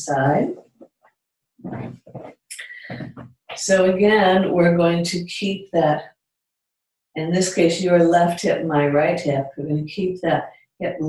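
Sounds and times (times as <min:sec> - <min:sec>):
woman breathing: 0:02.6 - 0:03.2.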